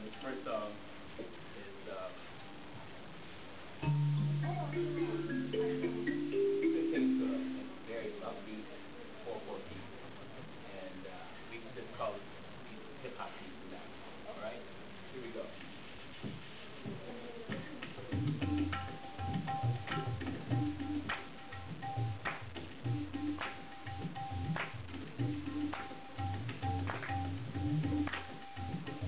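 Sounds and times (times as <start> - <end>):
thumb piano note ringing: 3.8 - 7.8
tabla playing: 3.8 - 8.2, 17.5 - 29.0
faint voices: 16.6 - 18.3.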